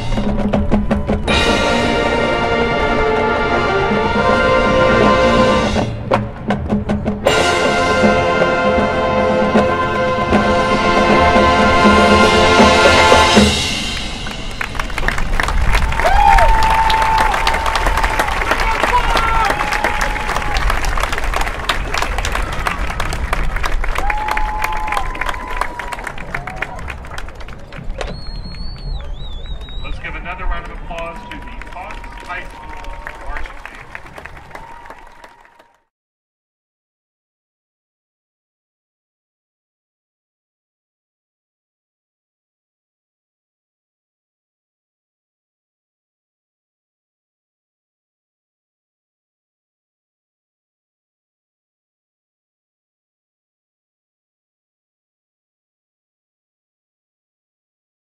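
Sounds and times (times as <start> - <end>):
marching band playing: 0.0 - 16.1, 16.9 - 35.6
crowd applauding and cheering: 13.8 - 35.9
shouts and whistles: 28.0 - 30.1.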